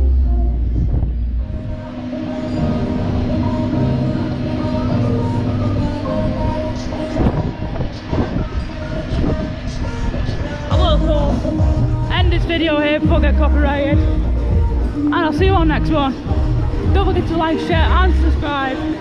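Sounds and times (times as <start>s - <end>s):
deep rumble: 0.0s - 18.6s
fairground music: 0.0s - 19.0s
ride machinery drone: 0.0s - 19.0s.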